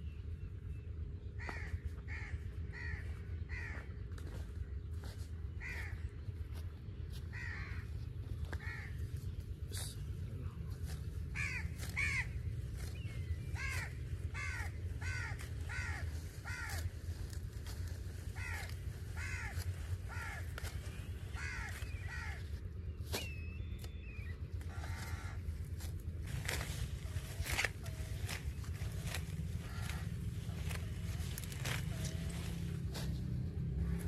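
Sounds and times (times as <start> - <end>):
low rumble: 0.0 - 34.0
crow cawing: 1.4 - 4.4, 5.6 - 6.1, 7.3 - 9.0, 11.3 - 12.4, 13.6 - 17.5, 18.2 - 22.5, 24.6 - 25.9, 29.2 - 32.7.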